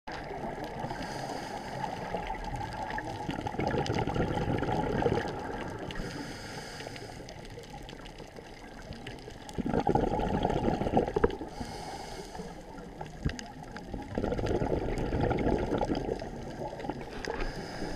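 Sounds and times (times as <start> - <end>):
low underwater rush: 0.1 - 17.9
regulator exhaling bubbles: 0.2 - 6.2, 9.3 - 12.0, 12.6 - 17.9.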